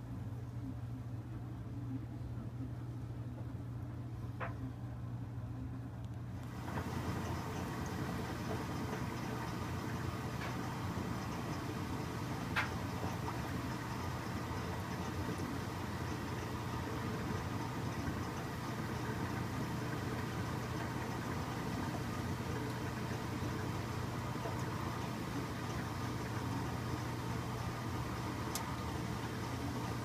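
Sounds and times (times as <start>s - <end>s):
washing machine motor hum: 0.0s - 30.0s
water churning in tub: 6.6s - 30.0s.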